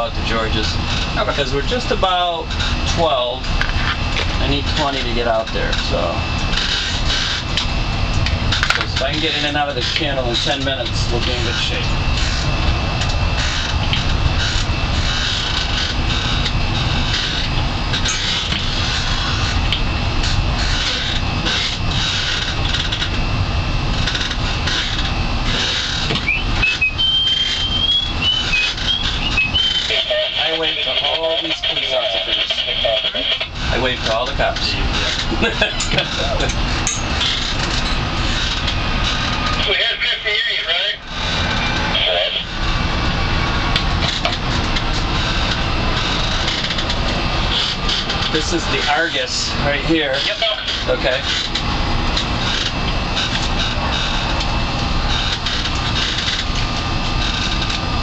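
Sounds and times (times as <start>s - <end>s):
boat engine: 0.0s - 58.0s
indistinct voices: 26.2s - 38.1s, 39.5s - 53.9s.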